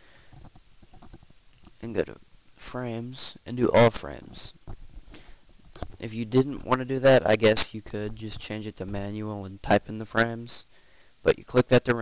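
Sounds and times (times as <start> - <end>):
microphone crackling ticks: 0.0 - 10.3
low rumbling hiss: 0.0 - 12.0
man talking: 1.8 - 4.6, 6.0 - 12.0.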